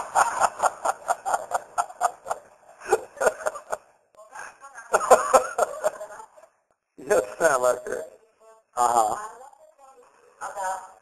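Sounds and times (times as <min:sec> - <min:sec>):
person laughing: 0:00.0 - 0:03.8.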